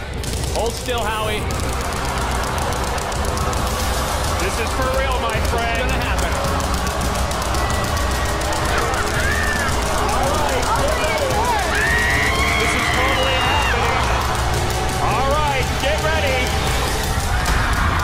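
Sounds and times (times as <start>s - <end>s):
background music with steady beat: 0.0s - 18.0s
audience screaming: 0.6s - 18.0s.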